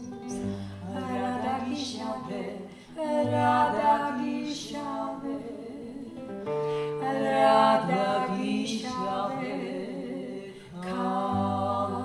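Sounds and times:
strummed acoustic guitar: 0.0 - 12.0
women singing in harmony: 0.0 - 12.0.

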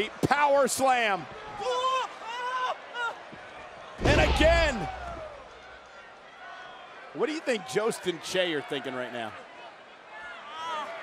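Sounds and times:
body slamming onto ring mat: 4.0 - 5.0.

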